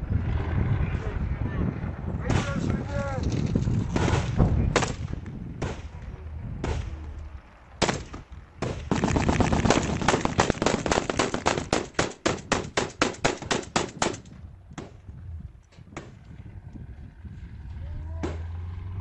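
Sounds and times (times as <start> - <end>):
rifle gunfire: 7.8 - 14.2.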